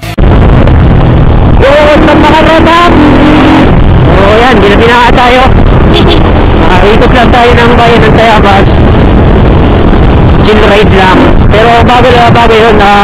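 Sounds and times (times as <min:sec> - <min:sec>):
motorcycle engine and road noise: 0:00.0 - 0:13.0.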